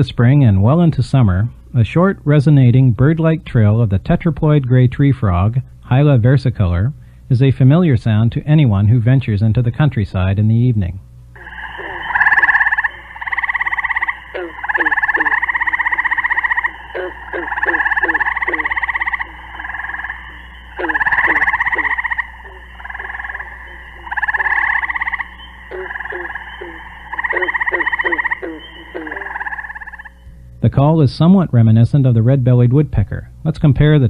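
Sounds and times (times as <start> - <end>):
low frog chirps: 11.4 - 30.4
tree frogs trilling: 11.4 - 30.4.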